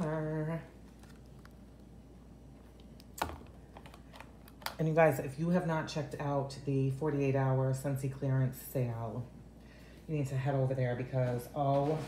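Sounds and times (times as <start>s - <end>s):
plastic pack set on countertop: 0.0s - 4.8s.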